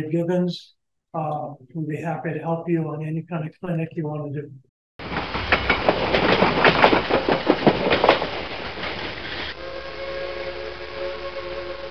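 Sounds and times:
train wheels clacking over rail joints: 5.0s - 9.6s
train horn: 9.5s - 11.9s.

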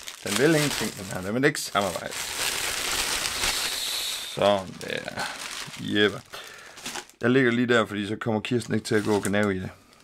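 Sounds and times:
plastic wrapping rustling: 0.0s - 7.6s, 8.6s - 10.0s.

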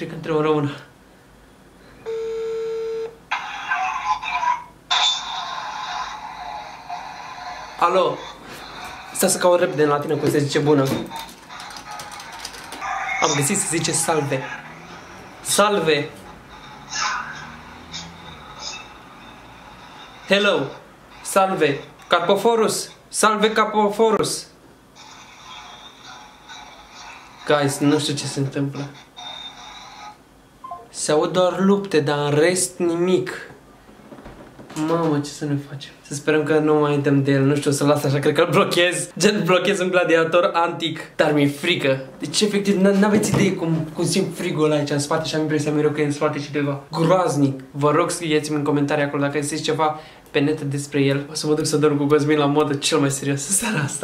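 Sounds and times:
phone ringback tone: 2.0s - 3.2s.

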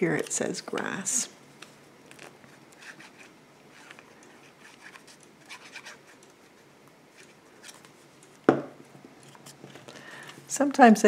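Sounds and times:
pen knocking on wooden table: 8.5s - 8.7s.

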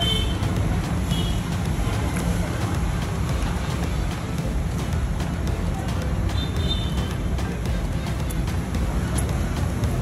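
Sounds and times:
background music: 0.0s - 10.0s
street traffic rumble: 0.0s - 10.0s.

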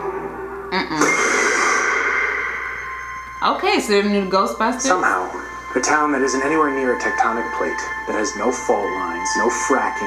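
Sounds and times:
trailer sound effect hit: 1.0s - 3.6s.

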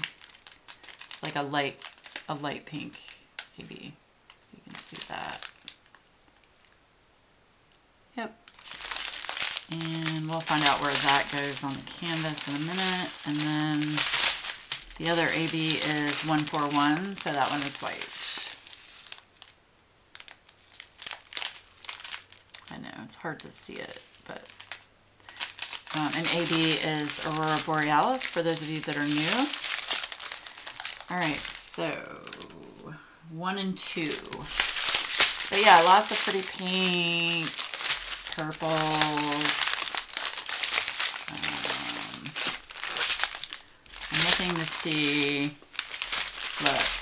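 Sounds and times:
plastic bags crinkling: 0.0s - 6.8s, 8.4s - 32.9s, 33.5s - 47.0s.

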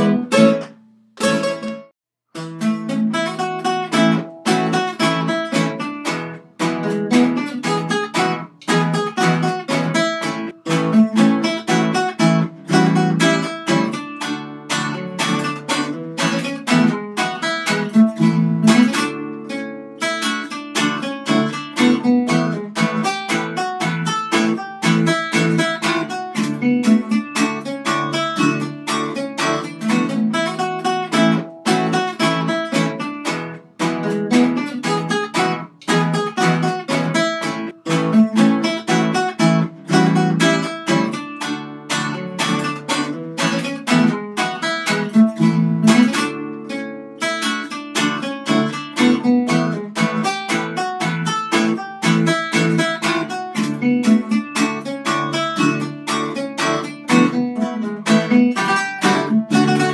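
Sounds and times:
acoustic guitar instrumental music: 0.0s - 59.9s.

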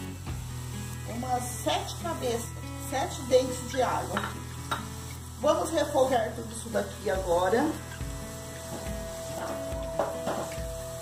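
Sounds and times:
background music with held note: 0.0s - 11.0s
garlic sizzling in oil: 0.0s - 11.0s.

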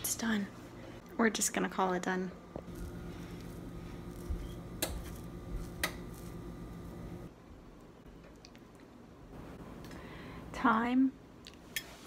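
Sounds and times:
low hum: 2.3s - 8.0s
fork scraping squash flesh: 2.7s - 6.4s.

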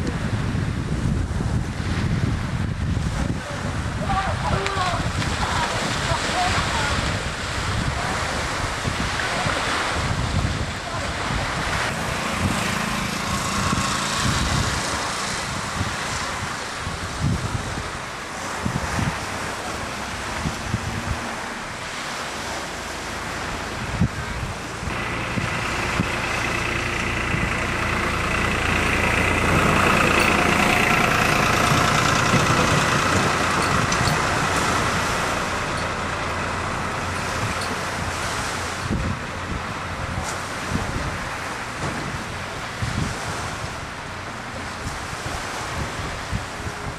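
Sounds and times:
steady wind: 0.0s - 46.9s
small waves on sand: 1.3s - 46.9s
engine passing: 4.3s - 46.9s.

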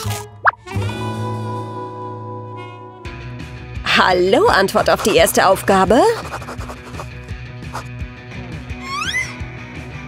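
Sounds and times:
background music with held notes: 0.0s - 4.8s, 7.2s - 10.0s.

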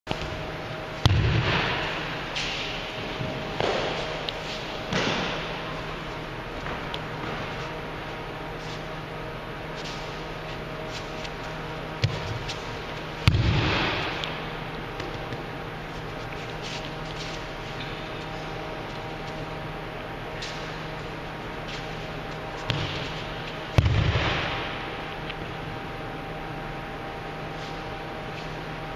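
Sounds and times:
rustling and sliding on mat: 3.8s - 4.9s, 8.5s - 9.1s, 9.7s - 13.1s, 15.2s - 19.5s.

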